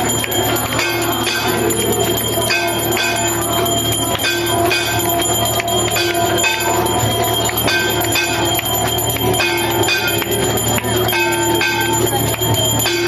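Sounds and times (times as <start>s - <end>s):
temple bells ringing: 0.0s - 13.0s.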